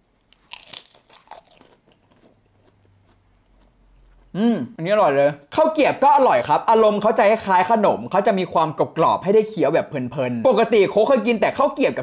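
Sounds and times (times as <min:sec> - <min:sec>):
crunching rice cracker: 0:00.2 - 0:03.7.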